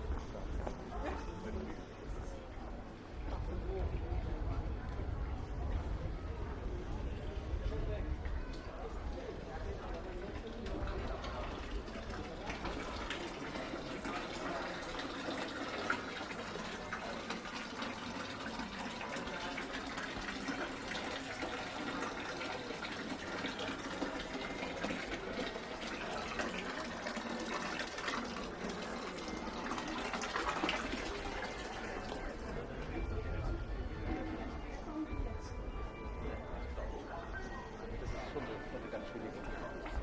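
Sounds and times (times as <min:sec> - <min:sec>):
water trickling into stone basin: 0:08.4 - 0:33.5.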